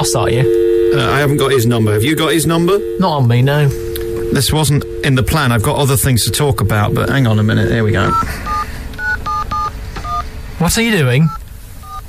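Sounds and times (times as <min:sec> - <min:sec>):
touch-tone keypad beeps: 0:03.9 - 0:10.2, 0:11.3 - 0:12.0.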